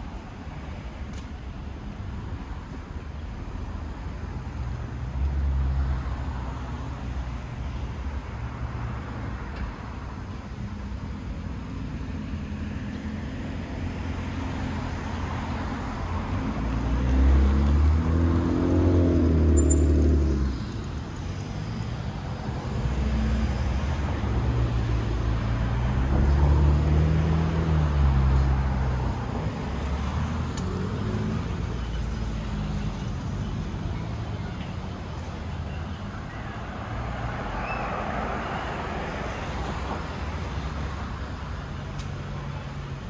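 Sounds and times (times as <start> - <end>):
passing motor vehicles: 0.0 - 43.0
steady road rumble: 0.0 - 43.0.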